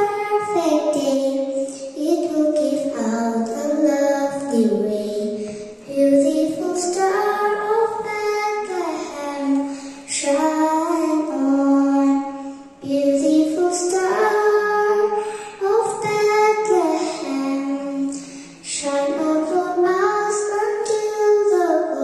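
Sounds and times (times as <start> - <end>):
girl singing into a microphone: 0.0 - 22.0.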